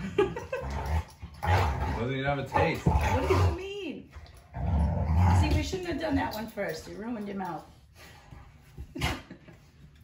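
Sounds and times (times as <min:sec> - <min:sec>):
guttural growling voice: 0:01.4 - 0:03.6.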